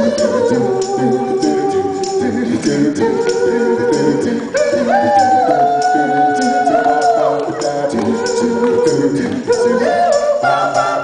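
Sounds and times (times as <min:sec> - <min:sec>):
male vocal group singing harmony: 0:00.0 - 0:11.0
percussive beat: 0:00.0 - 0:11.0.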